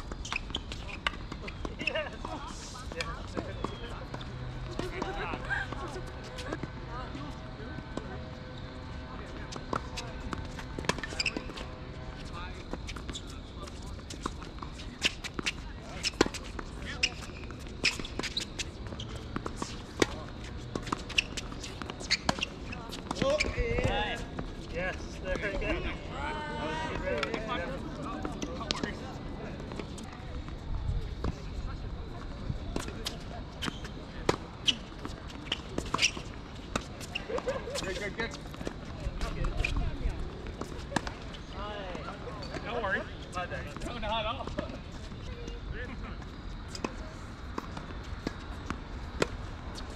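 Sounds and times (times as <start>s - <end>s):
people's voices: 0.4s - 48.7s
tennis balls bouncing on hard court: 26.9s - 29.0s.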